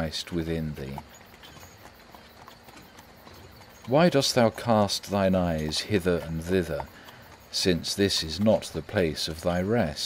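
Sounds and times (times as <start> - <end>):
horse hooves clip-clop: 0.0 - 10.0.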